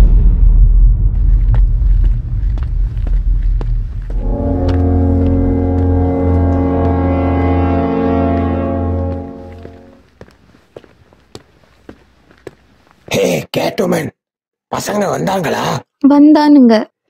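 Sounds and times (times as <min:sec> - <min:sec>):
deep low rumble: 0:00.0 - 0:10.0
brass-like horn blare: 0:04.0 - 0:10.0.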